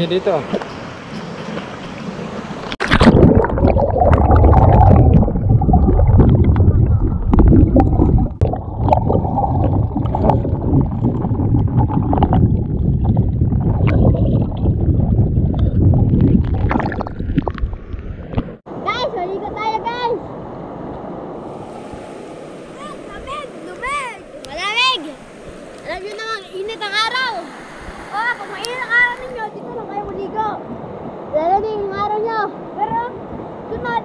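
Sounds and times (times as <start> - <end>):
river water at the surface: 0.0 - 14.5, 16.5 - 34.0
muffled underwater rumble and gurgle: 2.9 - 18.6.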